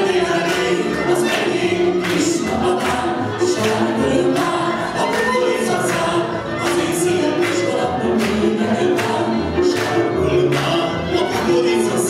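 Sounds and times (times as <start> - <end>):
double bass: 0.0 - 12.0
man and woman singing duet: 0.0 - 12.0
violins: 0.0 - 12.0.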